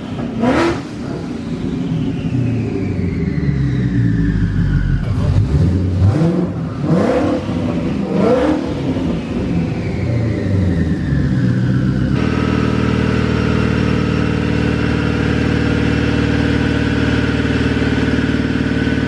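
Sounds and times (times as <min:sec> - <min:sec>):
car engine throttle blips: 0:00.0 - 0:19.0
high turbo whine: 0:00.0 - 0:19.0.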